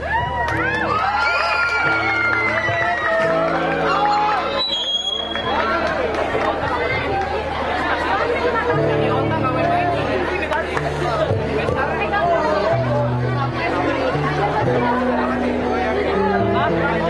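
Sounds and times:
crowd talking: 0.0s - 17.0s
electric guitars playing: 0.0s - 17.0s
bass notes: 1.8s - 17.0s.

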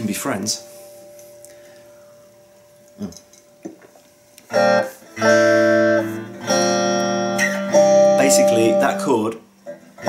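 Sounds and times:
electric guitar chord ringing: 4.4s - 10.0s.

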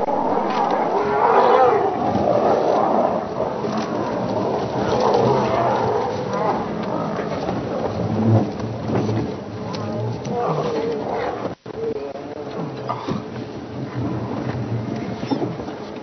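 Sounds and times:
lions growling and snarling: 0.0s - 15.6s.

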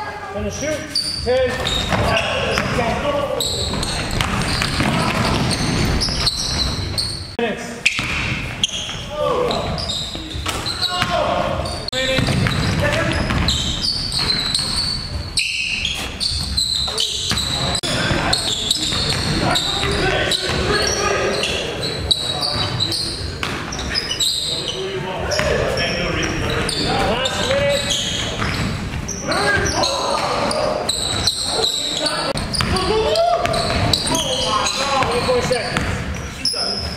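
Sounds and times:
players calling out: 0.0s - 36.9s
basketball bouncing on hardwood floor: 3.7s - 6.8s, 12.2s - 13.6s.

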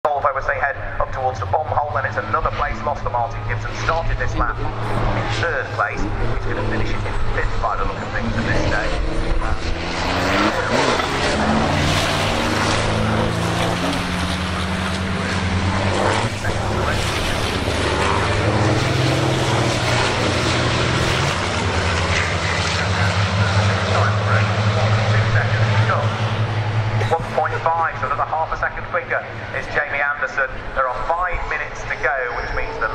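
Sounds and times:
diesel truck engines racing: 0.0s - 32.9s.

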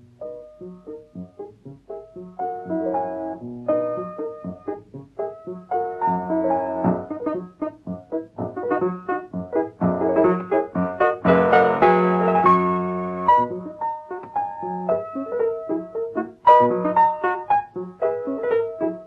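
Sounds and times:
piano music: 0.0s - 19.0s.

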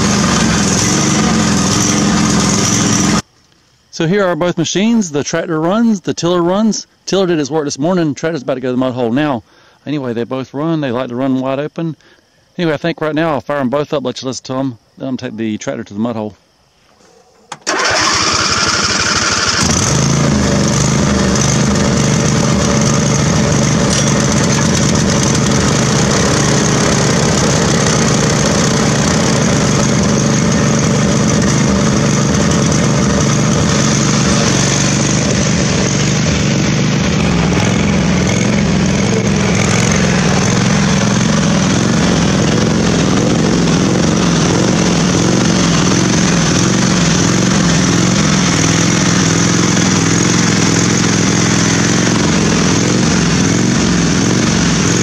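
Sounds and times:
lawn tractor engine starting and running: 0.0s - 3.3s, 17.4s - 55.0s.

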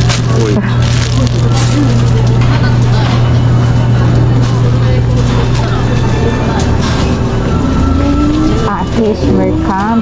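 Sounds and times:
faint voices of shoppers: 0.0s - 10.0s
steady low hum: 0.0s - 10.0s.

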